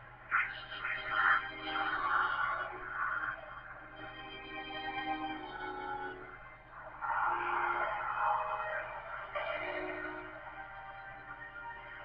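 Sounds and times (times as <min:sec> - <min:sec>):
suspenseful film score: 0:00.0 - 0:12.0.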